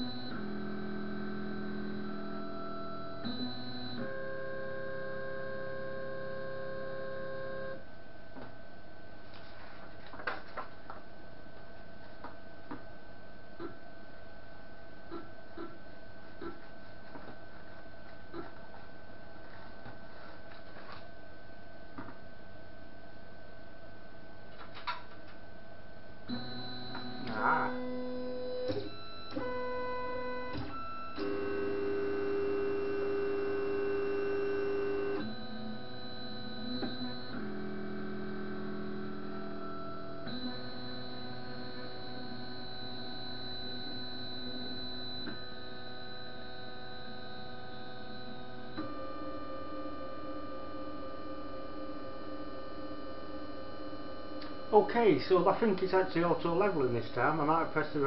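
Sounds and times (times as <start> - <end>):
printer stepper motors whining: 0.0 - 7.8, 26.3 - 57.3.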